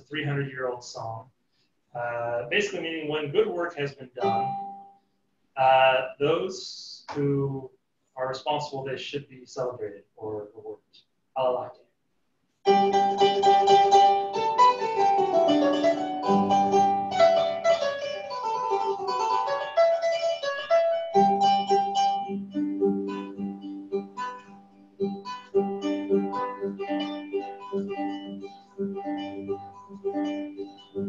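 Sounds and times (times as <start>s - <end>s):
harp plucked melody: 2.0s - 4.9s, 12.7s - 31.0s.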